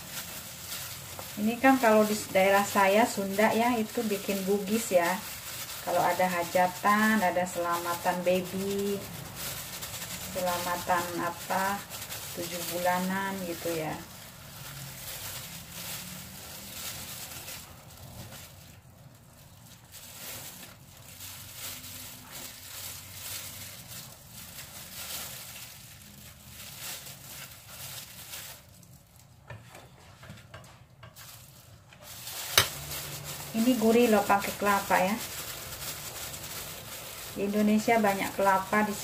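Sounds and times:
leaves and plastic gloves rustling: 0.0s - 29.5s, 31.2s - 39.0s.

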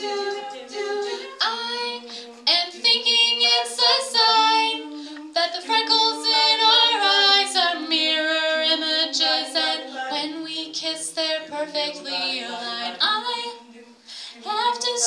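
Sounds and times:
women singing in harmony: 0.0s - 15.0s.

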